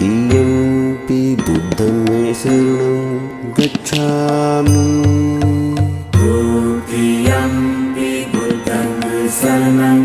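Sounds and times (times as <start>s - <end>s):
low pulsing beat: 0.0s - 9.8s
chant in long held notes: 0.0s - 10.0s.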